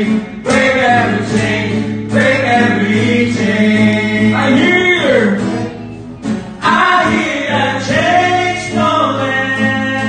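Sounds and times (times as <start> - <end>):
men singing gospel song: 0.0 - 5.2, 6.6 - 10.0
strummed acoustic guitar: 0.0 - 10.0.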